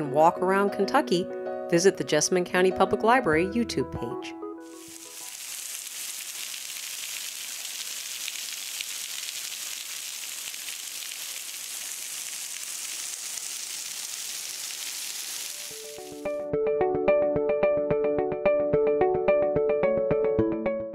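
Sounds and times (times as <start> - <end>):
waterfall splashing onto rocks: 4.7 - 16.3.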